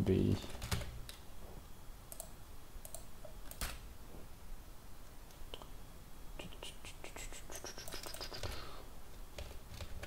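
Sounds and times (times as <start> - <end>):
computer keyboard typing: 0.5 - 1.2, 2.1 - 3.8, 7.8 - 8.6, 9.4 - 10.0
person whispering: 6.4 - 8.8.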